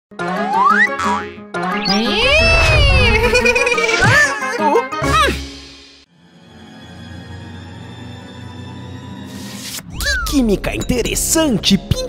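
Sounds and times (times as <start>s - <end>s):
falling cartoon sound effect: 1.8s - 5.4s.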